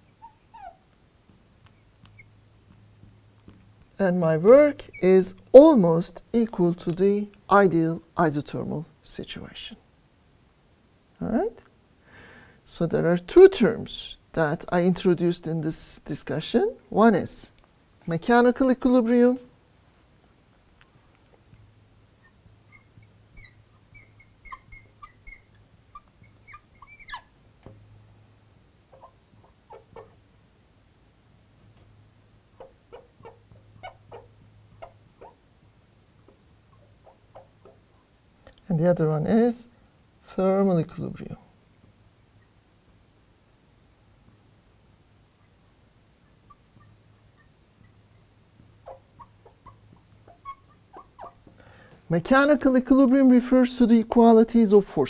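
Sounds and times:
marker pen squeaking on glass: 0.0 - 0.9, 1.7 - 2.4, 4.7 - 5.5, 22.2 - 27.4, 28.9 - 30.2, 48.8 - 51.3.

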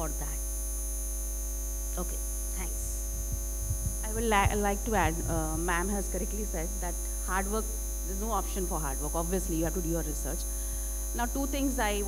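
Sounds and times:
electrical mains hum: 0.0 - 12.0
microphone handling thumps: 2.6 - 6.3.

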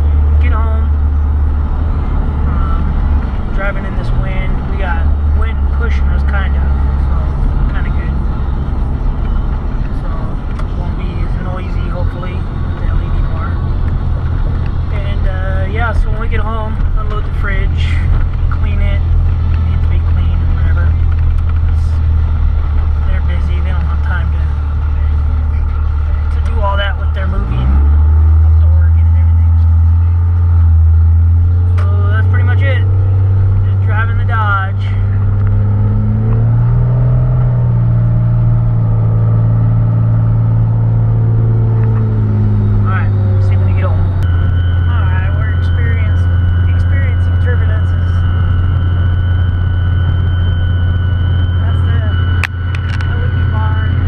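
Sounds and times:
diesel engine droning: 0.0 - 54.0
high whistle: 42.4 - 54.0.

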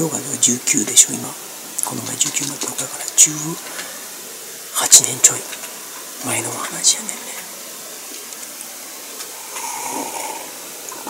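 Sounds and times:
background hiss: 0.0 - 11.0
person slurping a drink: 9.4 - 11.0.

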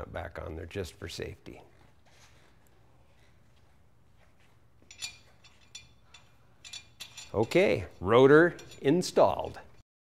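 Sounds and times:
metallic clinks of lug nut: 4.8 - 9.6.

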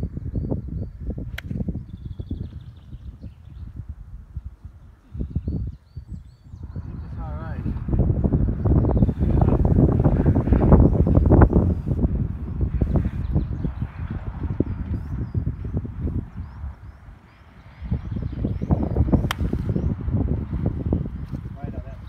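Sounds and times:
wind buffeting microphone: 0.0 - 22.0
golf club striking ball: 19.2 - 19.7.

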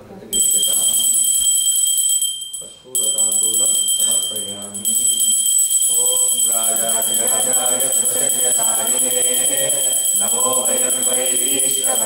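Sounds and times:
hand bell ringing: 0.4 - 12.0
man chanting: 2.9 - 12.0.

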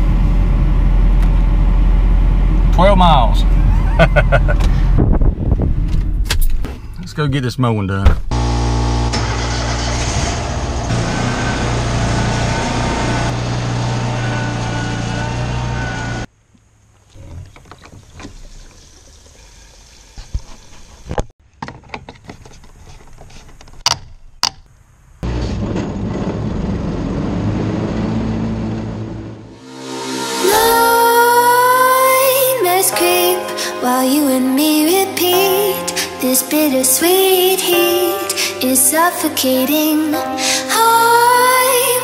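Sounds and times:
riding lawn mower engine running: 8.3 - 16.3, 25.2 - 29.6
fuel pouring from gas can: 17.0 - 21.1.

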